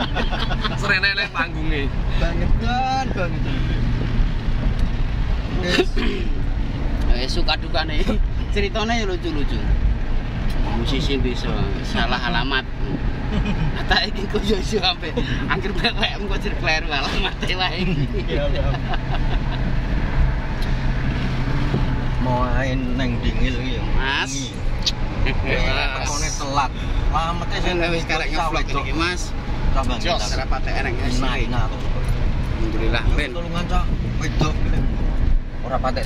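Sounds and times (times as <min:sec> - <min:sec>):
car engine and tyres drone: 0:00.0 - 0:36.0.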